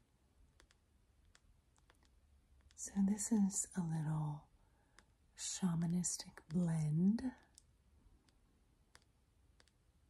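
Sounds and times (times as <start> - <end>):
faint sharp clicks: 4.9 - 5.1, 7.3 - 9.8.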